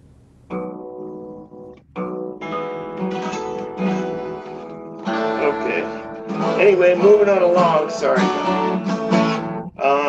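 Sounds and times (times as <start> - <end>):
acoustic guitar strummed: 0.0 - 10.0.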